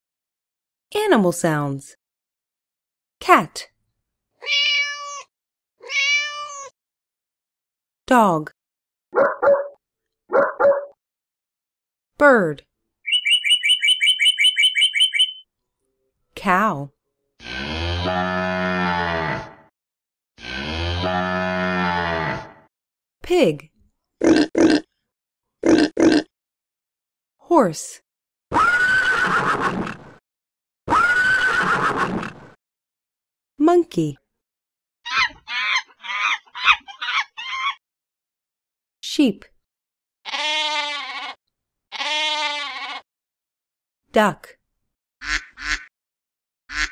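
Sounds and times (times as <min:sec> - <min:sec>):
monkey crying: 0:04.4 - 0:06.7, 0:28.5 - 0:29.7, 0:30.9 - 0:32.1, 0:35.1 - 0:37.8, 0:40.3 - 0:41.4, 0:42.0 - 0:43.0
bird chirping two-note chirps: 0:13.1 - 0:15.4.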